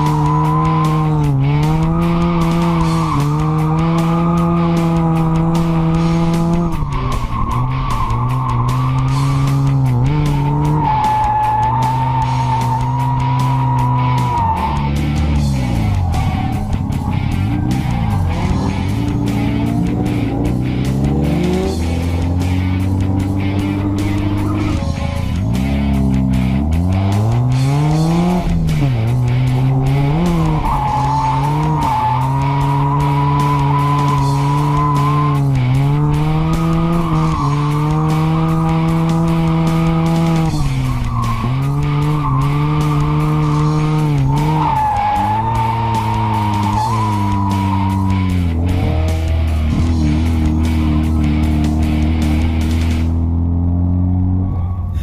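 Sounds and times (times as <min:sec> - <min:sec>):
background music with steady beat: 0:00.0 - 0:55.0
rotary engine revving: 0:00.0 - 0:55.0
tires squealing: 0:00.0 - 0:55.0.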